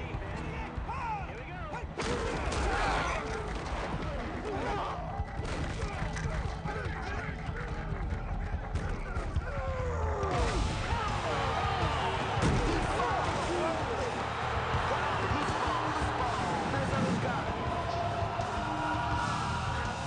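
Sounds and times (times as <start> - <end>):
music: 0.0 - 20.0
voices shouting and yelling: 0.0 - 20.0.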